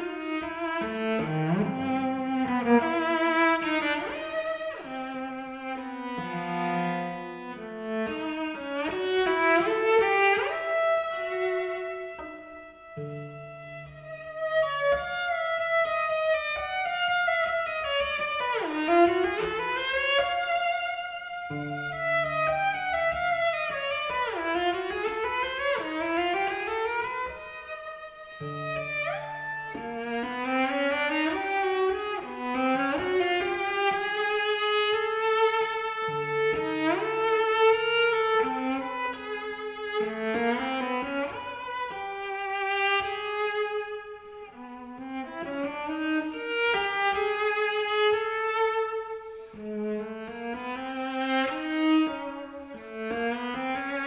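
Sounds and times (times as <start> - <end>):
solo cello sliding bowed notes: 0.0 - 54.0.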